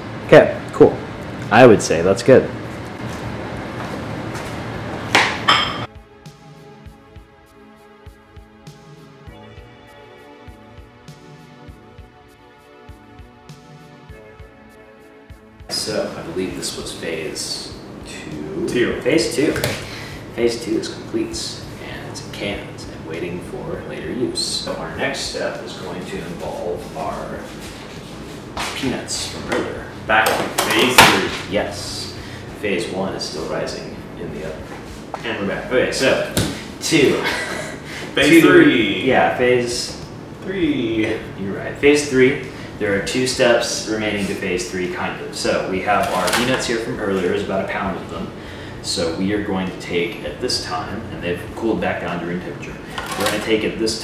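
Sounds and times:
music: 5.8s - 34.9s, 36.4s - 54.0s.

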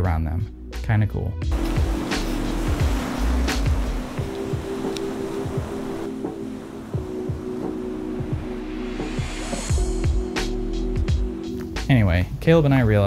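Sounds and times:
low thumping beat: 1.4s - 12.0s
sustained music chords: 1.5s - 11.9s.

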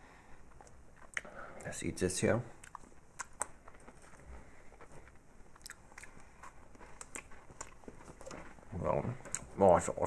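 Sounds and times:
faint chewing of cookie: 0.1s - 1.8s, 2.4s - 9.8s.

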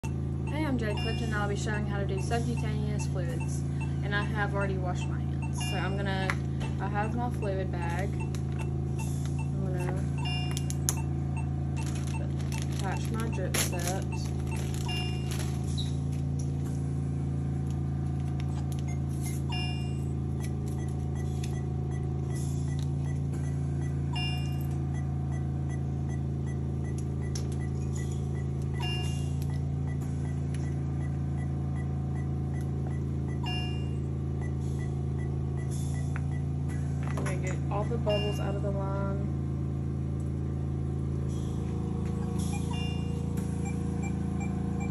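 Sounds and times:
faint high beeps: 0.0s - 6.1s, 37.7s - 38.7s
low machine hum: 0.0s - 44.9s.

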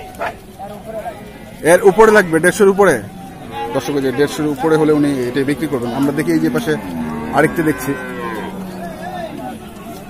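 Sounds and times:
market voices: 0.0s - 10.0s
cow mooing: 1.2s - 9.6s.

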